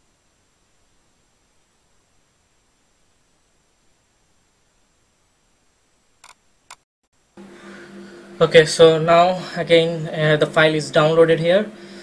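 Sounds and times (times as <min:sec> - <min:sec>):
low electrical hum: 0:00.0 - 0:12.0
short clicks: 0:06.2 - 0:06.8.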